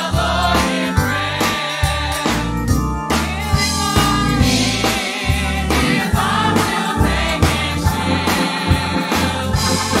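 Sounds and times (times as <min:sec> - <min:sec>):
bass: 0:00.0 - 0:10.0
gospel group singing: 0:00.0 - 0:10.0
drum beat: 0:03.2 - 0:10.0.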